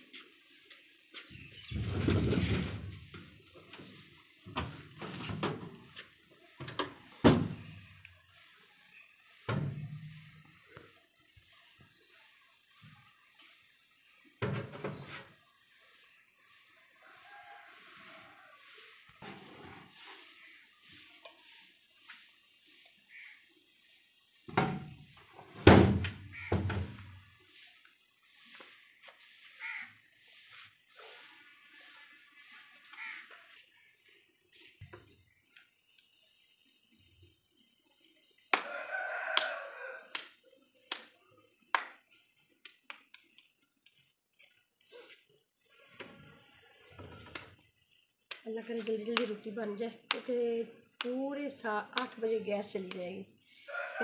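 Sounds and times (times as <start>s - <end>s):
rooster crowing: 17.0s - 18.8s, 38.6s - 40.3s, 53.6s - 54.0s.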